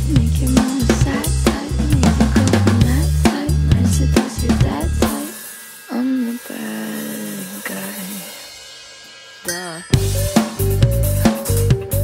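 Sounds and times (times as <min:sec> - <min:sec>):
acoustic drum kit: 0:00.0 - 0:12.0.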